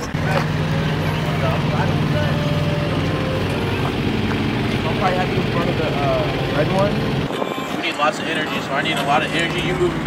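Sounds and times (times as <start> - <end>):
truck engine idling: 0.0 - 10.0.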